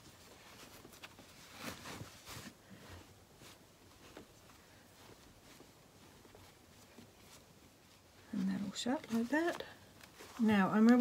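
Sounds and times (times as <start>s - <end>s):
cloth pages rustling: 0.0s - 11.0s.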